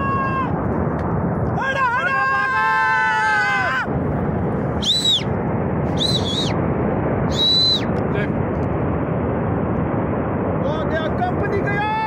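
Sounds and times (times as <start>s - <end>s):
shrill whistles: 4.8s - 5.3s, 6.0s - 6.6s, 7.3s - 7.9s.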